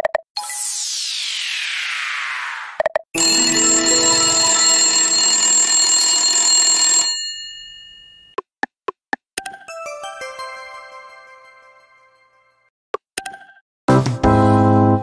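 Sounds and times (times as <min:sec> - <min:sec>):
chime ringing: 0:03.2 - 0:06.4
bright ringing win jingle: 0:03.2 - 0:08.3, 0:09.7 - 0:12.3.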